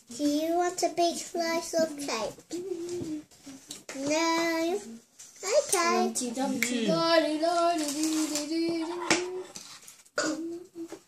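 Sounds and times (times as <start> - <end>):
child singing long notes: 5.8 - 9.5.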